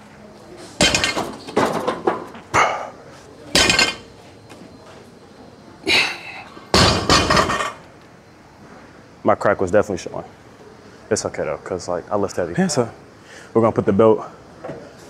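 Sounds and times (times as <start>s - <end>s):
barbell thuds and clanks: 0.8s - 2.1s, 3.6s - 4.0s, 6.8s - 7.8s.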